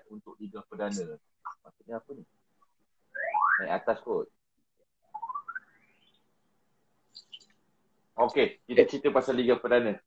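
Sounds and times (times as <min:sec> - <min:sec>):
rising whistle-like tone: 0:03.1 - 0:03.8, 0:05.0 - 0:06.3.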